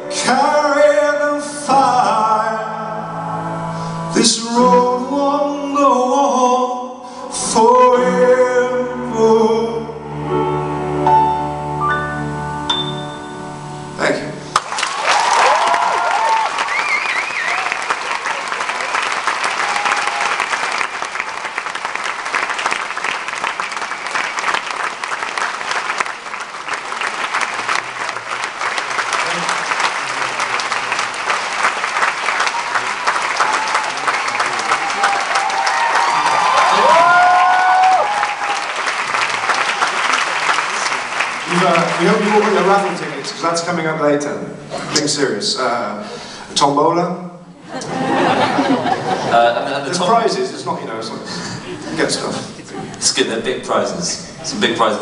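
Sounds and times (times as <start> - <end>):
audience applauding: 14.5 - 43.9, 47.8 - 50.8
cheering shouts: 14.9 - 20.6, 32.4 - 40.4.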